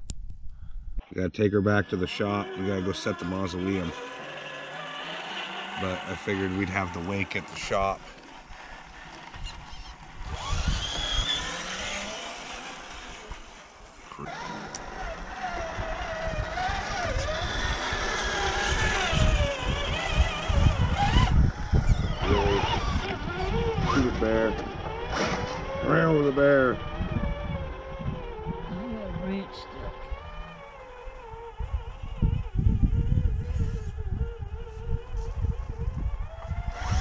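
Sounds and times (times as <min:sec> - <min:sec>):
small electric motors whining: 0:01.4 - 0:37.0.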